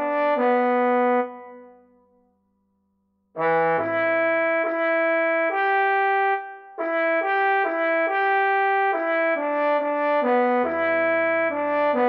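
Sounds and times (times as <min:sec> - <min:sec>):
solo trombone melody: 0:00.0 - 0:01.8, 0:03.4 - 0:12.0.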